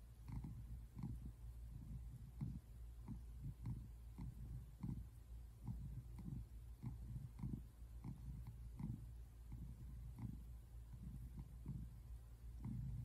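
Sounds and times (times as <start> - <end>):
cat purring: 0.0 - 13.0.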